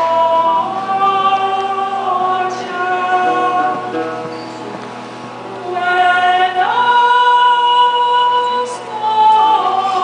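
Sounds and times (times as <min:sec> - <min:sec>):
two women singing duet: 0:00.0 - 0:04.3, 0:05.5 - 0:10.0.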